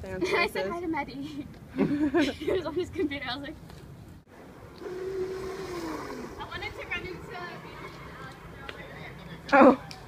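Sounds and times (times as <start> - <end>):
electric scooter motor whining: 4.6 - 9.0.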